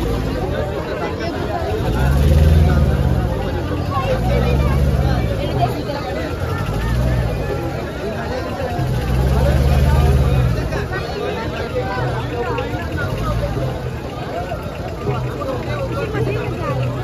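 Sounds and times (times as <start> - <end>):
crowd babble: 0.0 - 17.0.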